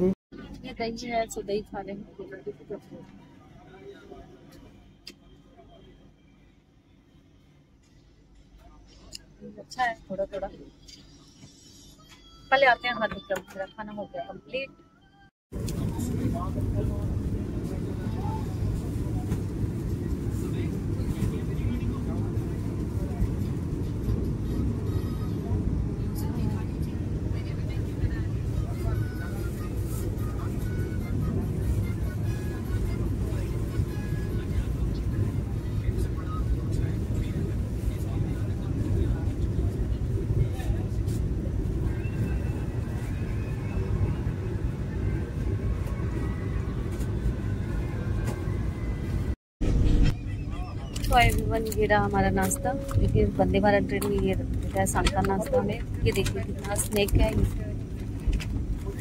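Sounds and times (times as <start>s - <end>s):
train rumble inside coach: 0.0s - 14.6s, 15.5s - 59.0s
faint voices: 15.6s - 49.4s.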